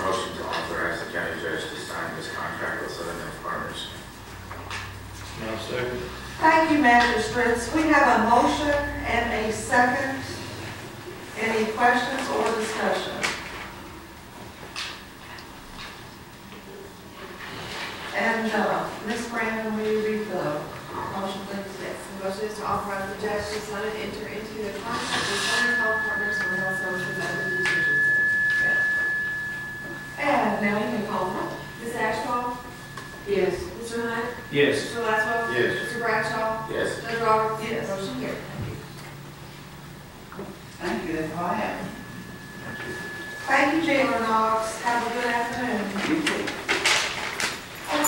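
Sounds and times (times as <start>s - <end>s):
high-pitched feedback tone: 0.0s - 13.4s, 18.1s - 48.0s
quiet voices: 24.6s - 39.0s
person speaking: 30.2s - 38.5s.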